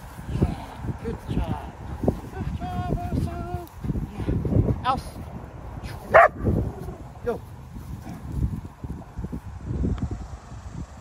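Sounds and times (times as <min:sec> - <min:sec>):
dog barking high-pitched: 0:06.1 - 0:06.4.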